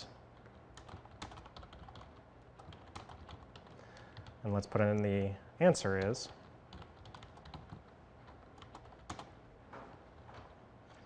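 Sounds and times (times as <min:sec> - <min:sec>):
typing on computer keyboard: 0:00.4 - 0:04.4, 0:06.0 - 0:09.4.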